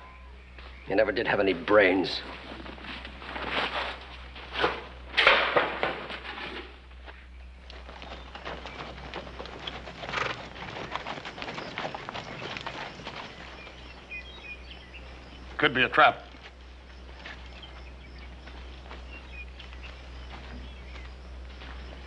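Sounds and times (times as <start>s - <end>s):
horse hooves crunching through brush: 0.4s - 22.0s.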